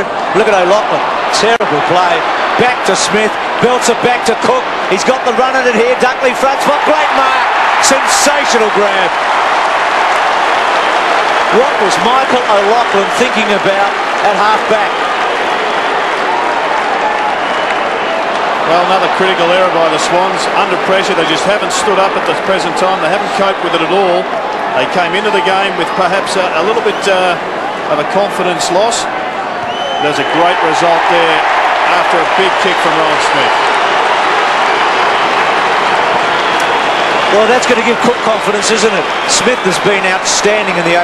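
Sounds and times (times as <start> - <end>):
stadium crowd cheering and applauding: 0.0 - 41.0.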